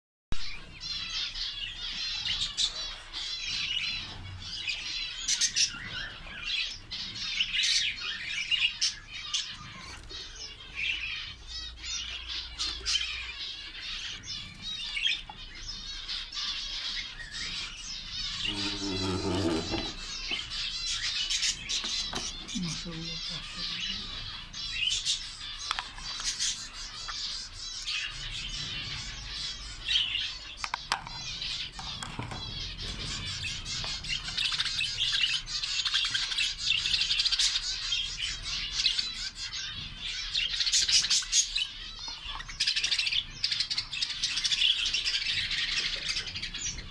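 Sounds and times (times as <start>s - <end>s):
budgies chirping: 0.3s - 46.9s
low voice-like sound: 18.5s - 19.9s.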